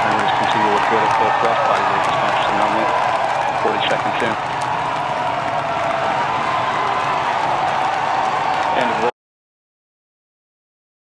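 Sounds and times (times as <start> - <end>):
applause: 0.0 - 9.1
crowd cheering: 0.0 - 9.2.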